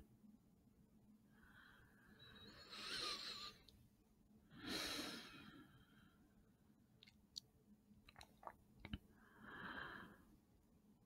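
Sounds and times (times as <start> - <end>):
man breathing slowly: 1.3 - 3.7, 4.5 - 6.4, 9.1 - 10.4.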